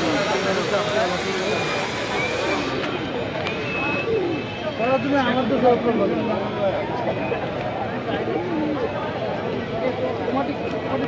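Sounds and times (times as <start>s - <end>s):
background hubbub: 0.0s - 11.0s
people talking: 0.0s - 11.0s.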